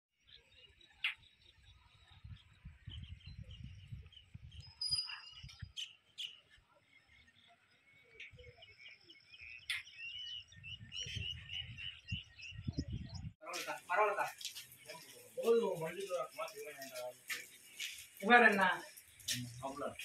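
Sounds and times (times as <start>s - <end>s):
birds chirping and calling: 0.2s - 20.0s
wind rumbling on microphone: 1.3s - 5.8s, 10.2s - 13.4s.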